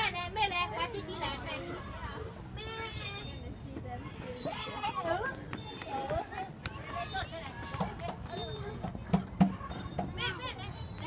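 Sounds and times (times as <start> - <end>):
children talking and calling: 0.0 - 11.0.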